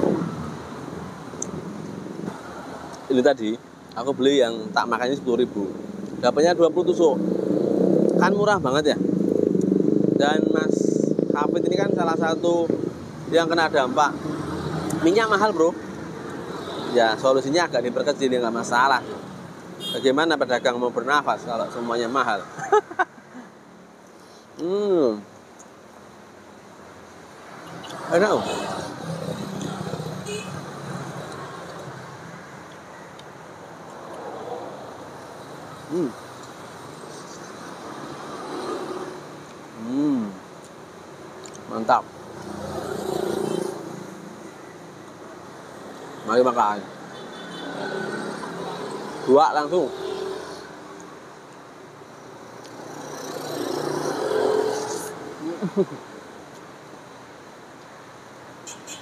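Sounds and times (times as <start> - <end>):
passing road traffic: 0.0 - 59.0
motor vehicle passing by: 6.8 - 17.4, 33.9 - 40.3, 42.2 - 44.4, 47.6 - 50.9, 52.6 - 55.8
man humming while eating: 39.8 - 40.4.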